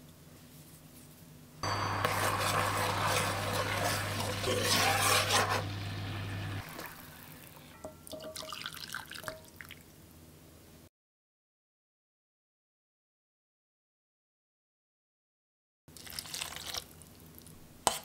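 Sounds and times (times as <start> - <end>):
marinade boiling in frying pan: 1.6 - 9.8, 15.9 - 17.5.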